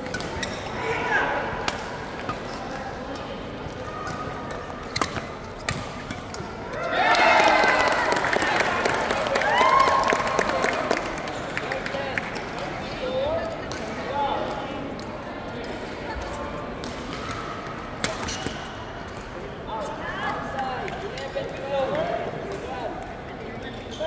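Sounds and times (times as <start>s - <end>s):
shoes squeaking on court floor: 0.0s - 0.8s, 4.0s - 6.4s
voices of players and spectators: 0.0s - 24.0s.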